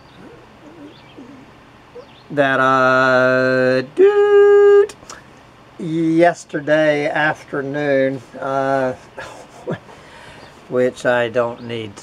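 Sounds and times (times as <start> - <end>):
bird cooing: 0.0 - 2.3.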